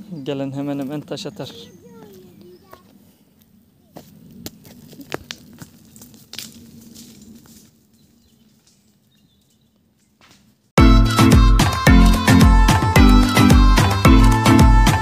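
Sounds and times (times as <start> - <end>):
footsteps crunching on stony ground: 0.3 - 10.7
loud music: 10.8 - 15.0.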